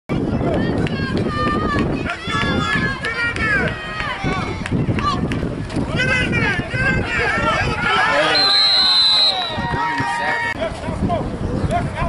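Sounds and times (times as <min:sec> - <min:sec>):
voices shouting: 0:00.5 - 0:11.0.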